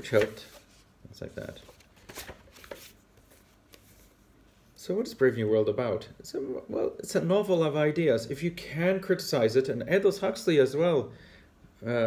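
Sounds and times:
book pages rustling: 0:00.0 - 0:04.6.

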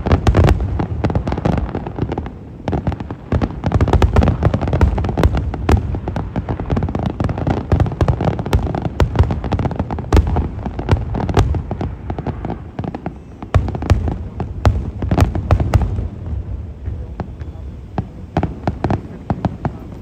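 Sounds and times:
fireworks bursting and crackling: 0:00.0 - 0:20.0.

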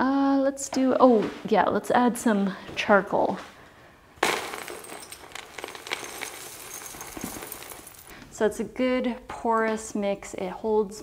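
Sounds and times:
charcoal pieces pouring and clinking: 0:04.2 - 0:08.1.

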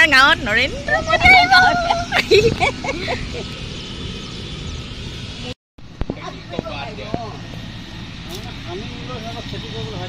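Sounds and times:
people's voices: 0:00.0 - 0:03.4
distant helicopter drone: 0:00.0 - 0:10.0
steady background drone: 0:00.0 - 0:10.0.

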